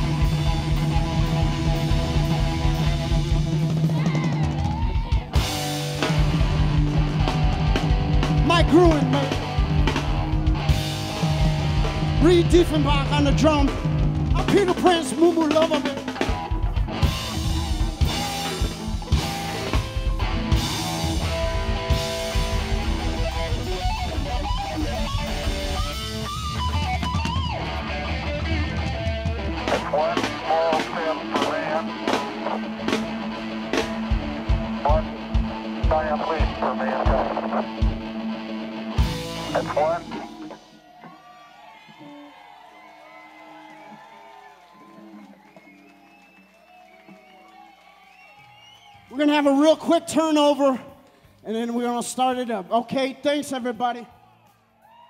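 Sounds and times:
live rock band playing: 0.0s - 41.2s.

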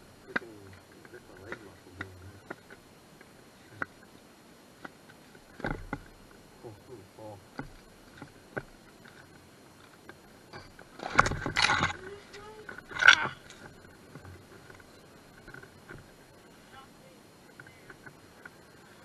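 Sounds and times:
thin ice cracking: 11.0s - 13.6s.

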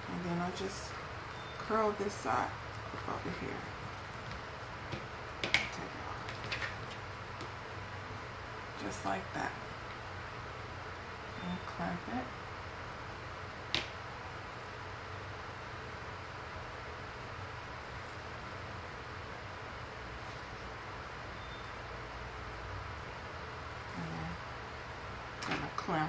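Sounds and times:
low room hum: 0.0s - 26.0s.

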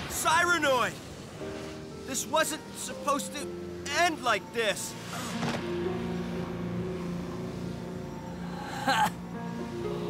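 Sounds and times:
rushing hiss: 0.0s - 6.2s
low drone: 0.9s - 10.0s.

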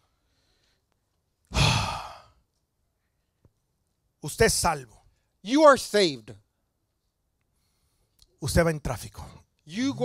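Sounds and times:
man sighing into microphone: 1.5s - 2.4s.

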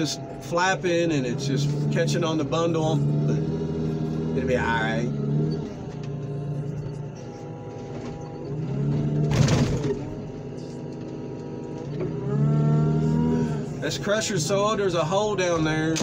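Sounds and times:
diesel loader engine revving: 0.0s - 16.0s
grapple crunching car body: 7.7s - 10.4s.

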